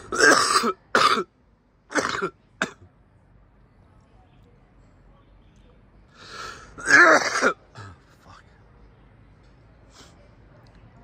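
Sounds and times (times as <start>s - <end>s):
person coughing: 0.1s - 1.2s, 6.8s - 8.0s.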